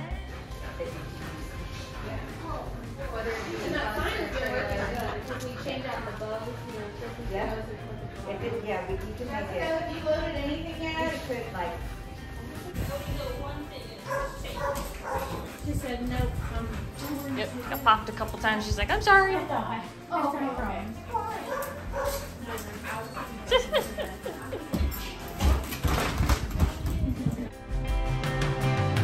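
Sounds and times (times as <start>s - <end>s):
dog sniffing: 4.6s - 7.6s, 14.0s - 19.0s, 21.1s - 25.8s
dog barking: 14.0s - 15.6s, 21.3s - 22.4s.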